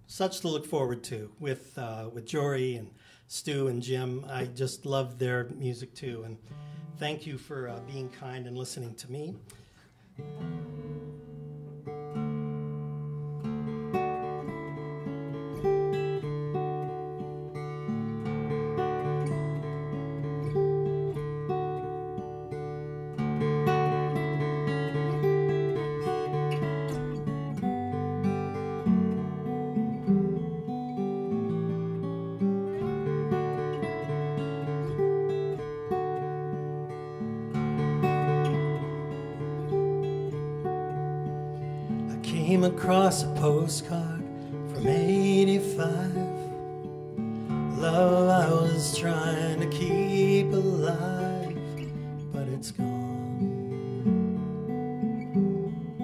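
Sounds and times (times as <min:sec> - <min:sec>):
acoustic guitar picked chords: 0:00.0 - 0:56.0.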